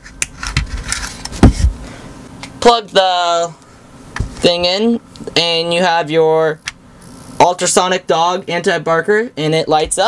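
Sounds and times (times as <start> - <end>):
heavy thump: 1.4 - 1.8.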